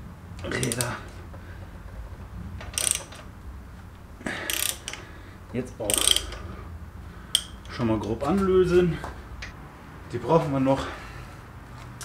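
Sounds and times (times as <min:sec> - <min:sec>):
hand ratchet clicking: 0:00.4 - 0:01.0, 0:02.6 - 0:03.3, 0:04.2 - 0:05.2, 0:05.8 - 0:06.6, 0:07.3 - 0:08.2.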